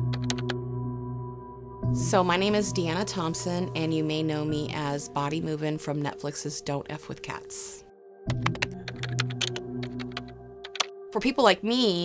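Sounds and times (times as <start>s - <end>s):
low music drone: 0.0s - 5.6s
computer keyboard typing: 0.1s - 0.6s, 8.3s - 10.9s.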